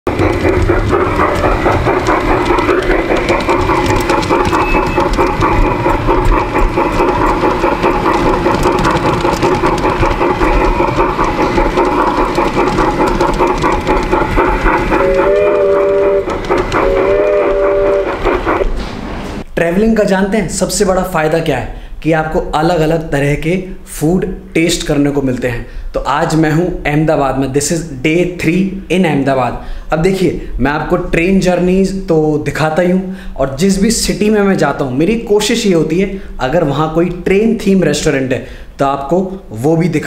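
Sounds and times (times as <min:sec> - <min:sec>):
model train running on track: 0:00.1 - 0:18.8, 0:30.9 - 0:40.0
train whistle tooting: 0:14.9 - 0:18.7.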